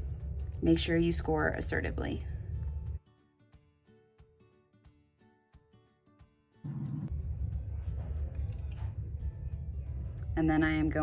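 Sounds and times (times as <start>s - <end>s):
soft guitar music: 0.0s - 10.2s.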